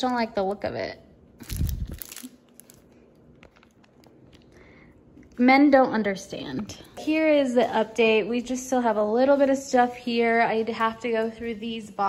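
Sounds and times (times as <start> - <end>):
plastic sleeve crinkling: 1.4 - 4.6
faint clicks and rustles: 1.4 - 5.4.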